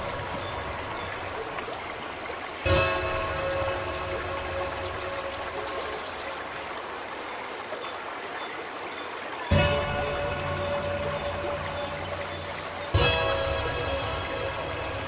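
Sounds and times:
stream water flowing: 0:00.0 - 0:15.0.

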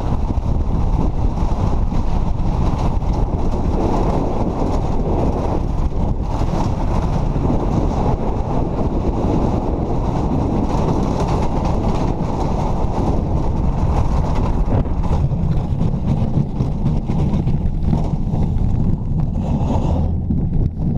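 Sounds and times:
sled runners rumbling on ice: 0:00.0 - 0:20.9
wind buffeting microphone: 0:00.0 - 0:20.9.

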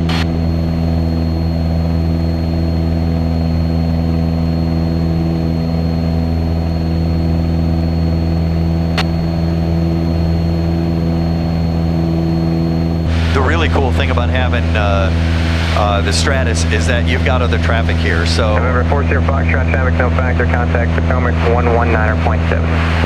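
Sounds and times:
faint high whine: 0:00.0 - 0:23.0
light aircraft engine droning: 0:00.0 - 0:23.0.

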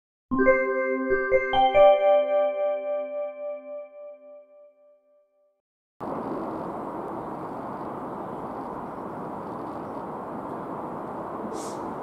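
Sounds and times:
electric train rumbling on tracks: 0:06.0 - 0:12.0.

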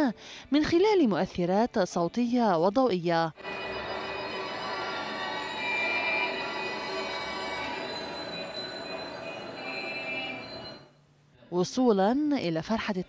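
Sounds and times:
sustained high tones: 0:03.4 - 0:11.0.

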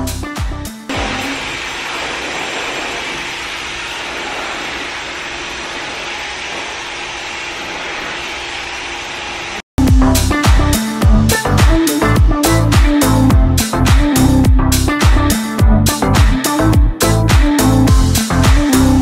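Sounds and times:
music with a beat: 0:00.0 - 0:00.9, 0:09.8 - 0:19.0
hair dryer blowing: 0:00.9 - 0:09.7.

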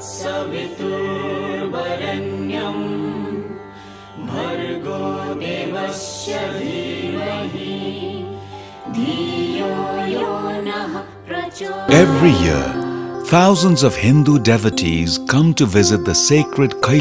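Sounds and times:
chanted mantra: 0:00.0 - 0:03.6, 0:04.2 - 0:14.1.

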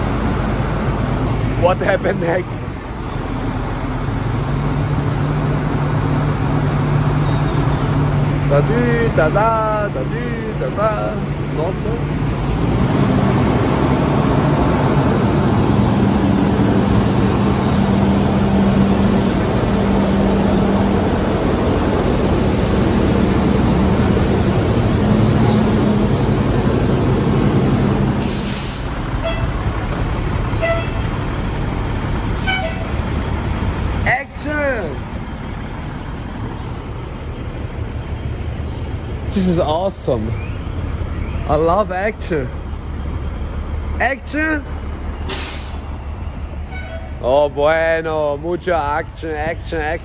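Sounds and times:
diesel engine running: 0:00.0 - 0:50.0
air hiss: 0:28.2 - 0:29.0, 0:45.3 - 0:45.8.

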